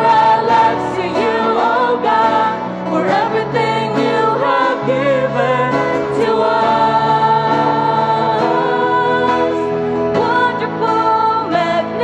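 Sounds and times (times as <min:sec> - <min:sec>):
acoustic guitar: 0:00.0 - 0:12.0
group singing worship song: 0:00.0 - 0:12.0.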